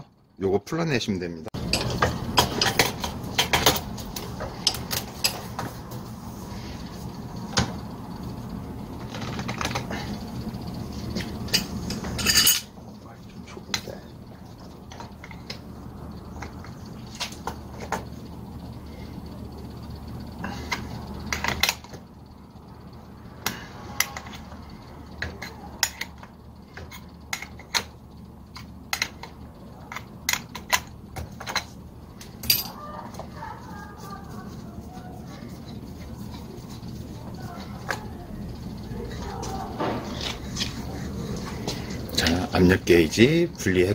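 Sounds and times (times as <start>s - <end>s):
steady low hum: 0.0s - 43.9s
metal tools clicking and clinking: 11.2s - 12.8s, 32.4s - 32.8s.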